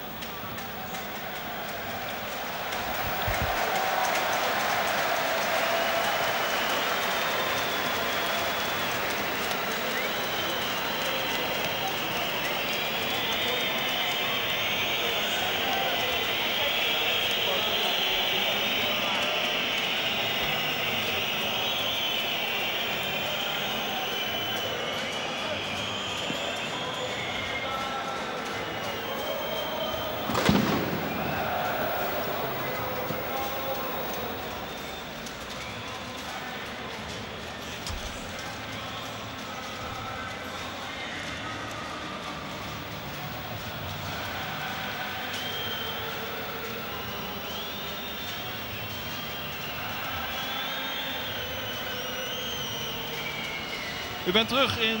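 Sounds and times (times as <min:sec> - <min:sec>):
stadium crowd din: 0:00.0 - 0:55.0.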